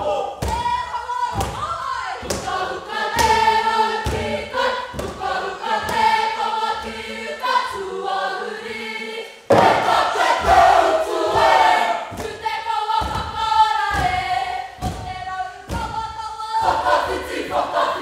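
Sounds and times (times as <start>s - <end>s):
group singing in unison: 0.0s - 18.0s
heavy beat thuds: 0.4s - 7.1s, 9.5s - 17.8s.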